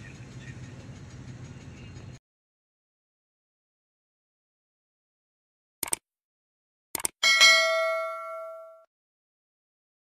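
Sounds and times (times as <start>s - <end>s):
mouse clicks: 5.8s - 6.0s
bright bell ding: 7.2s - 8.9s.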